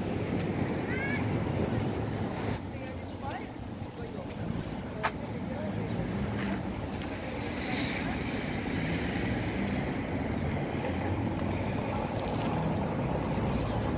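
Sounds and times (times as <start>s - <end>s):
faint voices of passers-by: 0.0s - 13.9s
light road traffic: 0.0s - 13.9s.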